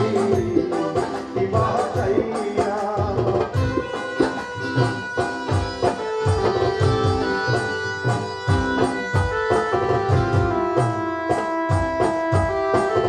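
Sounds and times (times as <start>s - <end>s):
barrel drum beating: 0.0s - 13.0s
keyboard melody: 0.0s - 13.0s.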